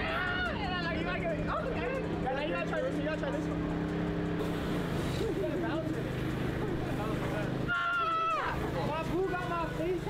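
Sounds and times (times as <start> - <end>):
man shouting: 7.6 - 8.6.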